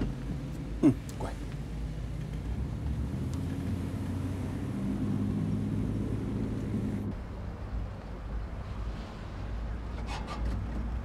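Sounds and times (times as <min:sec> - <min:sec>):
car engine drone: 0:00.0 - 0:07.5
road noise inside car: 0:00.0 - 0:11.0.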